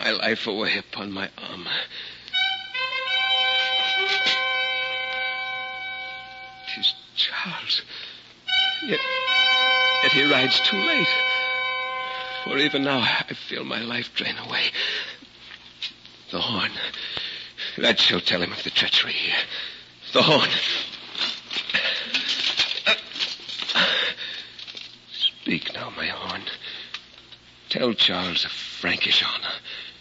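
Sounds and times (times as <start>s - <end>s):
sustained orchestral string chord: 2.4s - 7.0s, 8.5s - 13.3s
man's voice: 10.0s - 11.3s, 12.4s - 14.7s.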